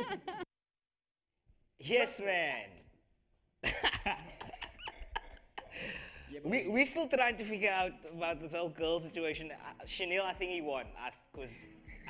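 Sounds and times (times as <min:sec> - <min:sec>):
person laughing breathily: 0:03.7 - 0:06.3.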